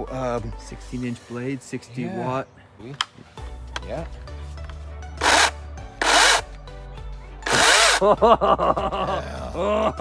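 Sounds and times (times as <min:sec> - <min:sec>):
electric chainsaw revving: 0:05.2 - 0:06.5, 0:07.4 - 0:08.0.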